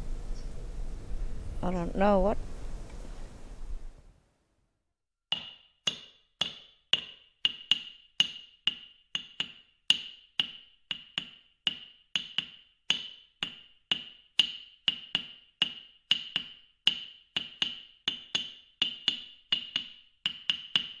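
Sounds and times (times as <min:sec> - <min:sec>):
wooden percussion clacks: 0:05.3 - 0:21.0.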